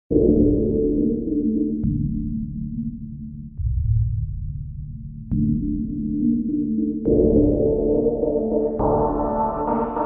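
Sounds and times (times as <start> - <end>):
hip-hop beat with bass synth: 5.4 - 10.0.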